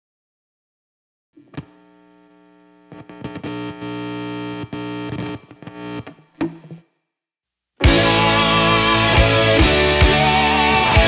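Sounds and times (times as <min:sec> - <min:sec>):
distorted crackling buzz: 0:01.4 - 0:06.3
faint amplifier hum: 0:01.4 - 0:06.8
guitar jack pop: 0:07.8 - 0:11.0.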